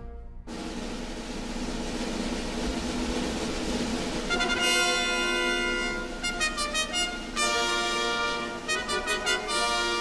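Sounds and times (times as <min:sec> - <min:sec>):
snare drum roll: 0:00.5 - 0:10.0.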